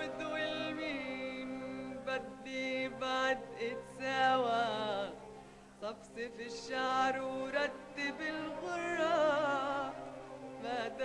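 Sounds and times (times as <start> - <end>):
person singing ornamented melody: 0.0 - 11.0
steady musical accompaniment: 0.0 - 11.0.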